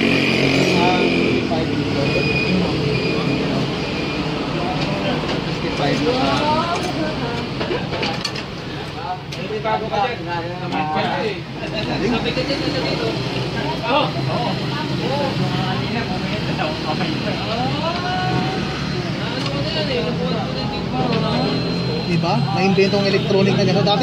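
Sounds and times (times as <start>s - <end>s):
people talking: 8.9s - 24.0s.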